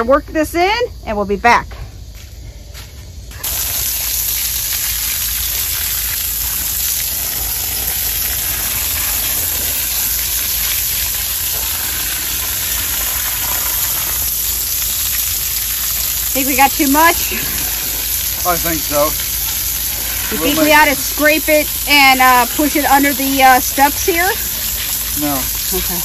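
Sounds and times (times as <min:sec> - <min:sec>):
water spraying on stone: 0:03.3 - 0:26.0.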